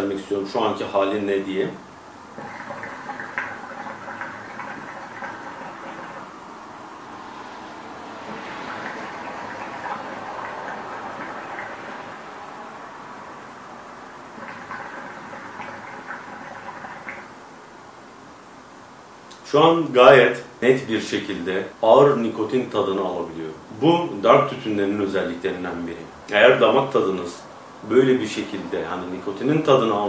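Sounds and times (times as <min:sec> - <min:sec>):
hookah water bubbling: 0:00.8 - 0:19.4.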